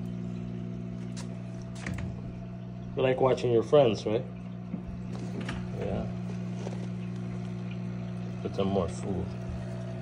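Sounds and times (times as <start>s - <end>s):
tank filter humming: 0.0s - 10.0s
water trickling: 0.0s - 10.0s.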